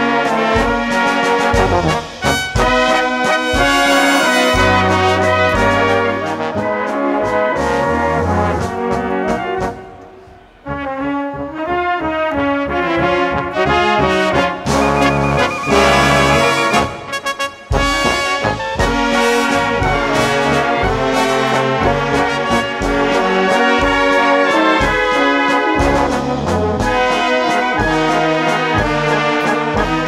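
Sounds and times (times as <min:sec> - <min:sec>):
steady drum beat: 0:00.0 - 0:06.7, 0:14.7 - 0:30.0
brass band playing: 0:00.0 - 0:30.0.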